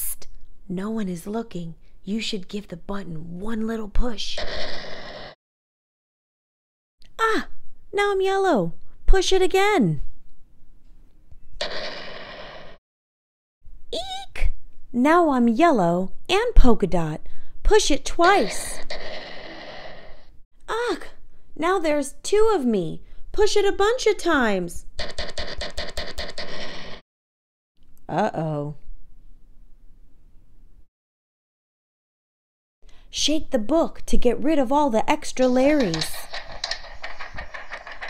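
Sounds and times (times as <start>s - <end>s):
rapid button clicks: 25.0s - 26.8s, 35.5s - 38.0s
paper page rustling: 35.8s - 38.0s.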